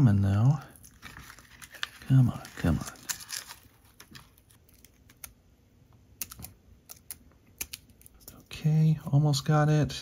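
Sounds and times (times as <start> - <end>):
plastic packaging crackling: 0.8 - 5.2.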